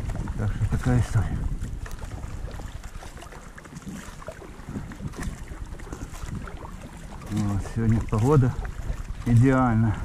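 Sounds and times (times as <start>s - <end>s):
kayak paddle strokes in water: 0.0s - 10.0s
wind rumble on microphone: 0.0s - 10.0s.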